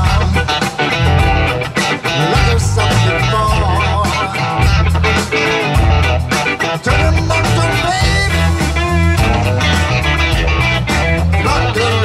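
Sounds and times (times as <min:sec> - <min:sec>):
bass guitar: 0:00.0 - 0:12.0
drums: 0:00.0 - 0:12.0
electric guitars: 0:00.0 - 0:12.0.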